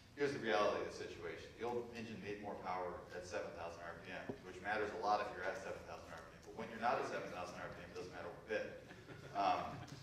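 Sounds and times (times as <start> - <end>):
man speaking: 0.1 - 9.9.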